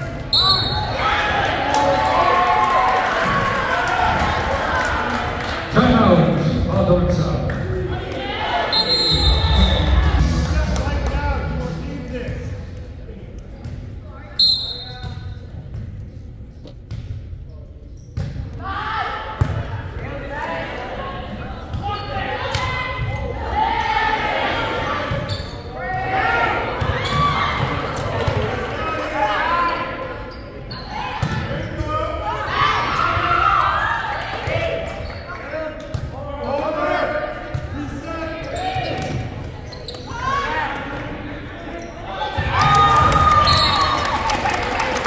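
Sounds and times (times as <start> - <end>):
voices calling out in a gymnasium: 0.0 - 45.0.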